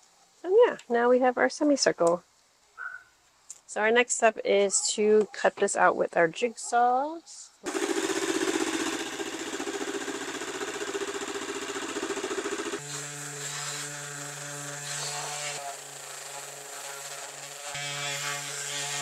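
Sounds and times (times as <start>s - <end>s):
jigsaw cutting through door panel: 7.6s - 19.0s
random orbit sander running: 7.6s - 19.0s.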